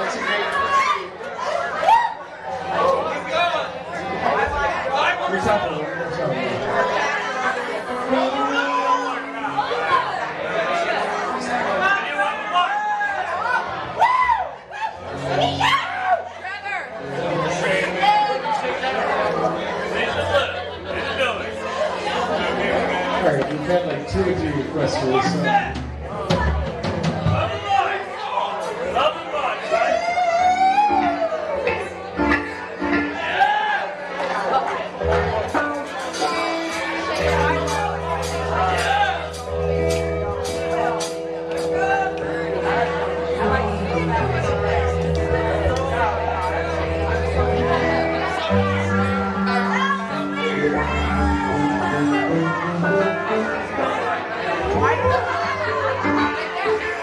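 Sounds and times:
hubbub of overlapping voices: 0:00.0 - 0:57.0
band bass: 0:03.9 - 0:57.0.

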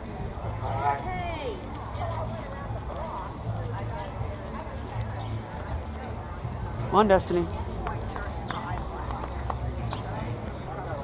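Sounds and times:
background chatter: 0:00.0 - 0:11.0.

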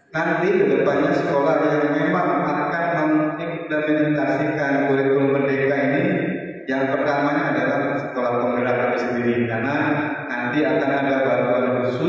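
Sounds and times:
man speaking over loudspeakers: 0:00.0 - 0:12.0.

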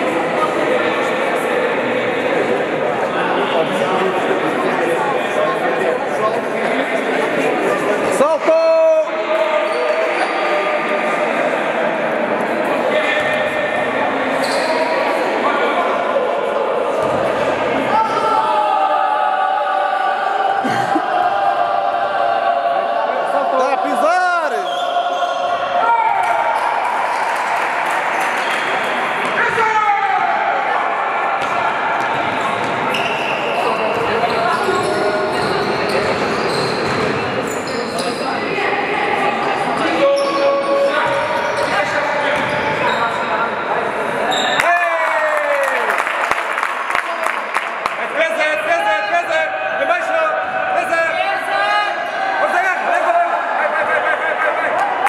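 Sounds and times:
sneakers squeaking: 0:14.3 - 0:15.1, 0:17.0 - 0:18.3, 0:24.4 - 0:25.8, 0:31.4 - 0:38.6, 0:39.6 - 0:43.5, 0:44.3 - 0:44.6.

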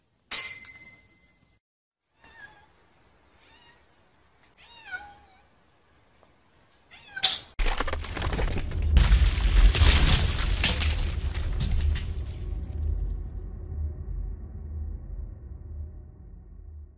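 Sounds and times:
cat meowing: 0:02.2 - 0:02.8, 0:03.4 - 0:03.9, 0:04.5 - 0:05.5, 0:06.9 - 0:07.3
rocks breaking and crashing: 0:07.6 - 0:13.4.

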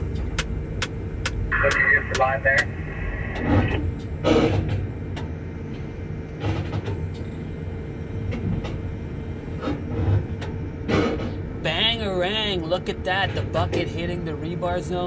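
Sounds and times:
crane machinery drone: 0:00.0 - 0:15.0
faint hum: 0:00.0 - 0:15.0.

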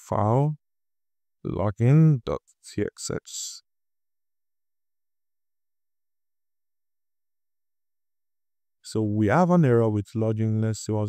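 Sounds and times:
man speaking: 0:00.0 - 0:00.6, 0:01.5 - 0:03.6, 0:08.9 - 0:11.0.

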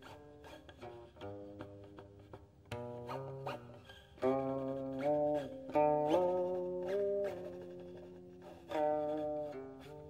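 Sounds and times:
plucked string instrument notes: 0:00.0 - 0:10.0.

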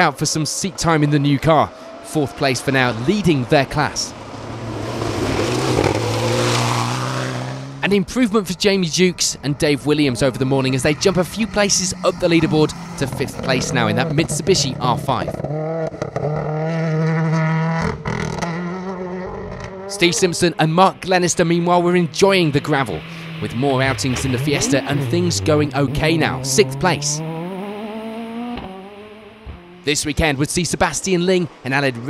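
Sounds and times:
rally car engine high-revving: 0:00.2 - 0:07.9, 0:09.8 - 0:30.0.

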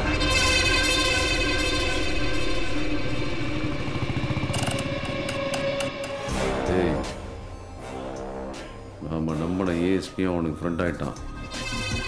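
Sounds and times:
background music: 0:00.0 - 0:12.0
motorcycle engine running: 0:03.0 - 0:06.3.

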